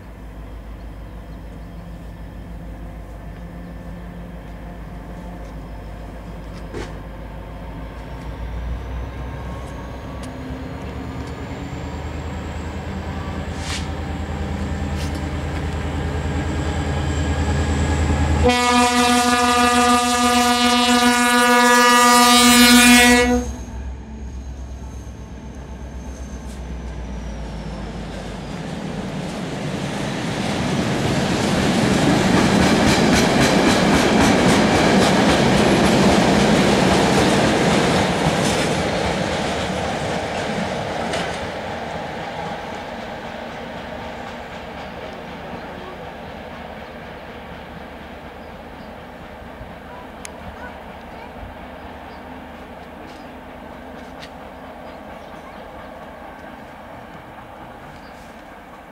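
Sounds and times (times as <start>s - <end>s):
locomotive engine rumble: 0.0s - 58.9s
locomotive horn blast: 18.3s - 23.8s.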